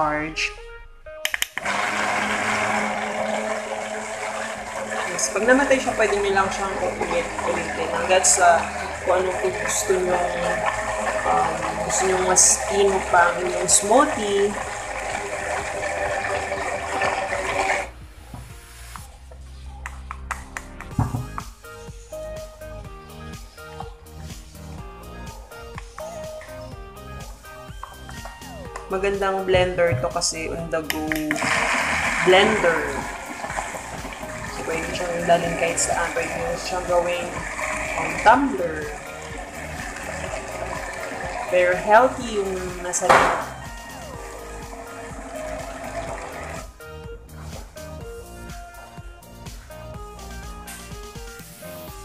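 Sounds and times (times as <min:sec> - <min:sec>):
blender motor humming: 0:01.3 - 0:18.0, 0:31.3 - 0:46.8
knock: 0:20.9 - 0:21.4, 0:43.1 - 0:43.5.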